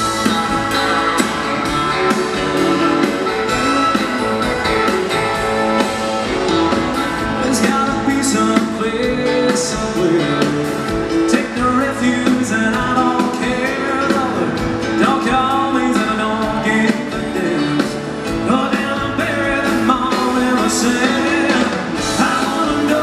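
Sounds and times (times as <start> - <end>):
live band playing country-pop: 0.0 - 23.0
man singing: 7.2 - 23.0.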